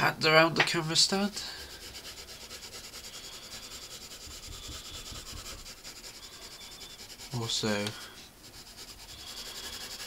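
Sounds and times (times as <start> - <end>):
colour pencil shading on paper: 0.8 - 10.0.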